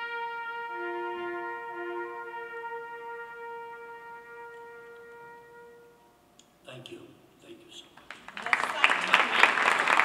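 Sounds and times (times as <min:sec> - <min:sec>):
trumpet holding long note: 0:00.0 - 0:06.3.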